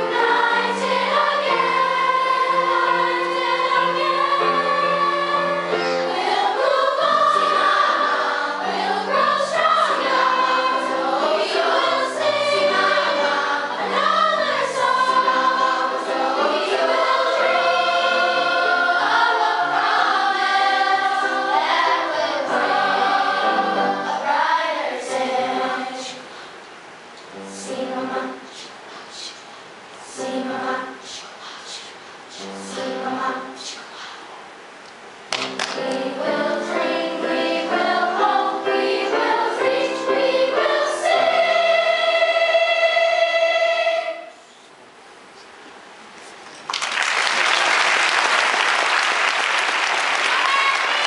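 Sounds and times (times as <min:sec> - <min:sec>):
mixed choir singing: 0:00.0 - 0:26.4, 0:27.3 - 0:28.7, 0:30.0 - 0:31.2, 0:32.3 - 0:33.8, 0:35.7 - 0:44.4, 0:50.0 - 0:51.0.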